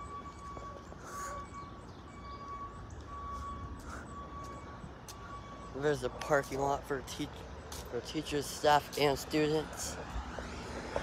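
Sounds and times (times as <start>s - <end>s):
street rumble: 0.0s - 11.0s.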